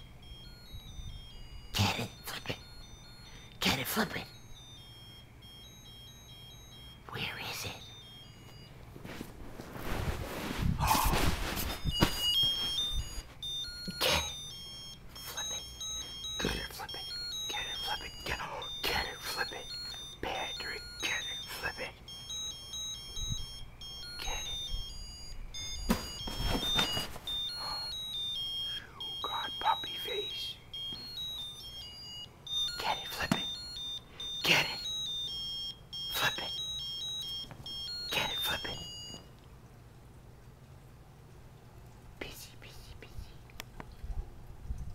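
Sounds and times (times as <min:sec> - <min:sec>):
electronic toy beeping tune: 0:00.0 - 0:08.8, 0:11.6 - 0:39.3
rustling: 0:08.4 - 0:13.8, 0:25.6 - 0:28.4.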